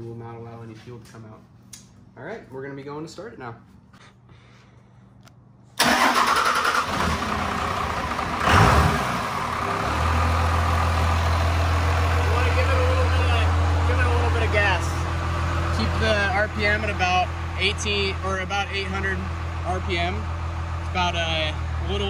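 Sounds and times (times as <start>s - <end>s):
diesel engine starting and idling: 5.8s - 22.0s.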